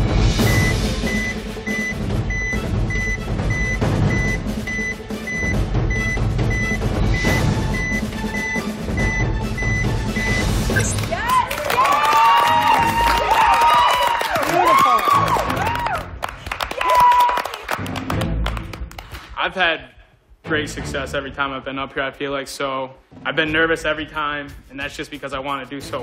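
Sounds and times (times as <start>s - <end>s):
short high electronic beeps: 0.4s - 10.9s
people cheering and shouting: 10.8s - 17.7s.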